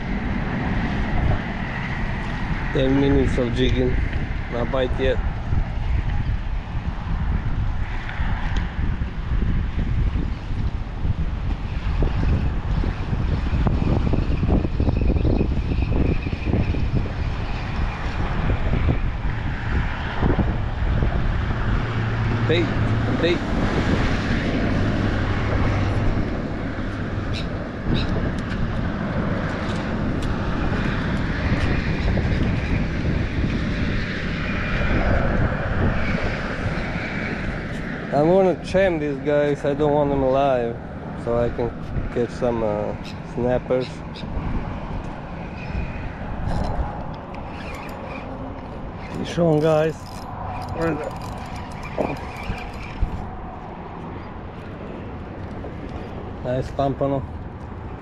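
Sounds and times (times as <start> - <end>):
passing traffic: 0.0 - 58.0
wind: 0.0 - 58.0.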